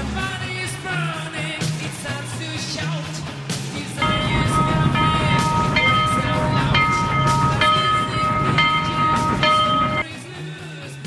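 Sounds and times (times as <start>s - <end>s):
rock music: 0.0s - 11.0s
train horn tones: 4.0s - 10.0s
train rumbling: 4.0s - 10.0s.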